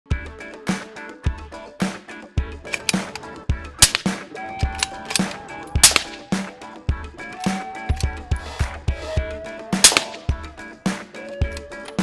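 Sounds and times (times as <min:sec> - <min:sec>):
background music with steady beat: 0:00.1 - 0:12.0
suppressed rifle shots: 0:03.8 - 0:04.2, 0:04.8 - 0:06.3, 0:09.8 - 0:10.3.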